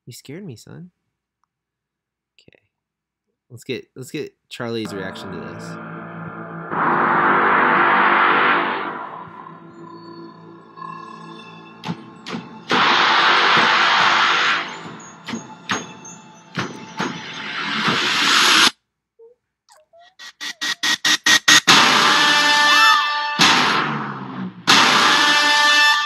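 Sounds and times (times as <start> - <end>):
dark horror music swells: 4.9 - 17.8.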